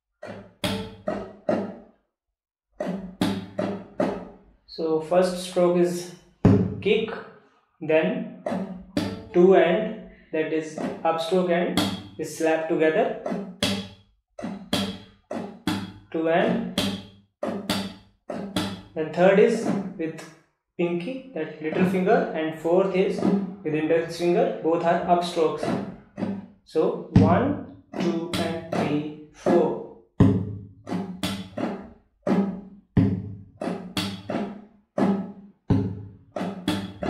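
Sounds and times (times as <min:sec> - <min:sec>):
classical guitar strumming: 0:00.2 - 0:01.8, 0:02.8 - 0:04.3, 0:08.4 - 0:20.2, 0:20.8 - 0:26.4, 0:27.0 - 0:37.0
percussive slap on guitar strings: 0:00.2 - 0:01.8, 0:02.8 - 0:04.3, 0:06.5 - 0:07.1, 0:08.5 - 0:09.4, 0:10.7 - 0:20.3, 0:21.7 - 0:22.2, 0:22.9 - 0:26.4, 0:27.0 - 0:37.0.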